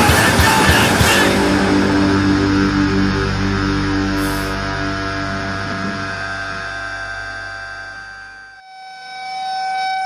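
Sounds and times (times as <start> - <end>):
distorted electric guitar and bass: 0.0 - 8.6
guitar feedback whine: 0.0 - 10.0.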